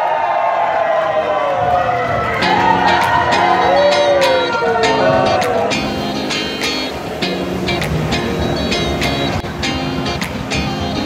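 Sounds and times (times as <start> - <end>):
crowd cheering and shouting: 0.0 - 7.9
music with drum beat: 2.2 - 11.0.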